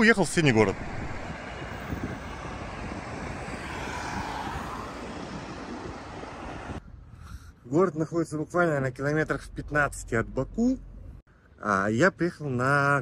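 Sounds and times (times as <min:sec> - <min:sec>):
vehicle passing: 0:00.3 - 0:06.8.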